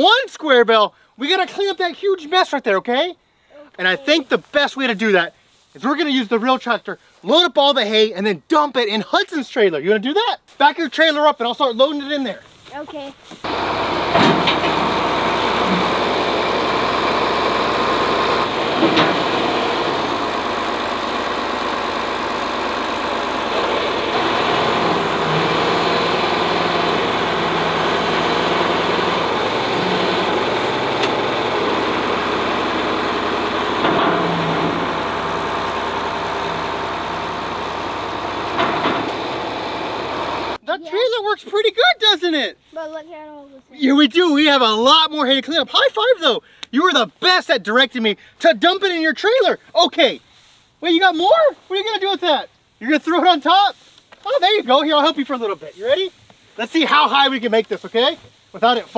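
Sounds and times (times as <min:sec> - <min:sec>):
loader scooping and dumping hay: 0:11.9 - 0:40.6, 0:49.6 - 0:52.2, 0:52.8 - 0:58.9
tractor engine running: 0:13.3 - 0:40.6.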